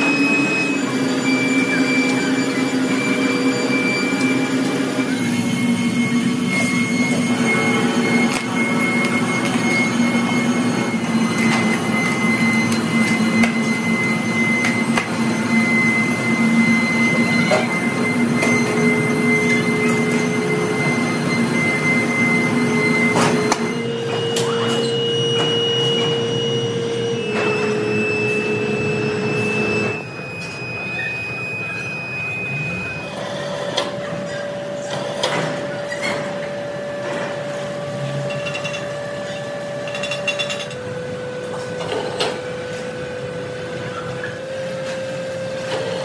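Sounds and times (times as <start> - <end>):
foundry machinery drone: 0.0 - 46.0
high machine whine: 0.0 - 46.0.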